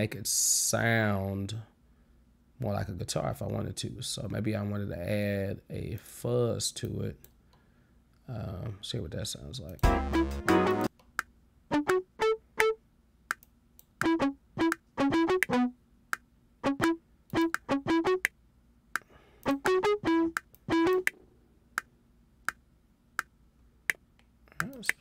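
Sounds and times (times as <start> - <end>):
fuzz bass guitar notes: 9.8 - 10.9, 11.7 - 12.8, 14.0 - 15.8, 16.6 - 18.3, 19.5 - 21.1.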